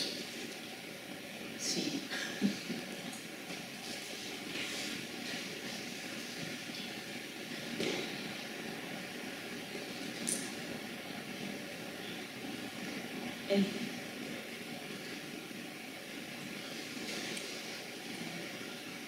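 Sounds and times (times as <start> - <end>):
faint hum: 0.0 - 19.0
low room noise hiss: 0.0 - 19.0.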